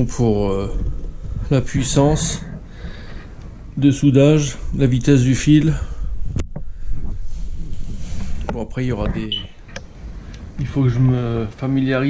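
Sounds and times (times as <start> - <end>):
microphone handling rumble: 0.0 - 10.8.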